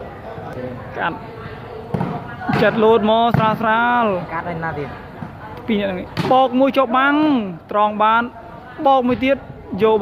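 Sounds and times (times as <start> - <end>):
volleyball slap: 1.9 - 4.3.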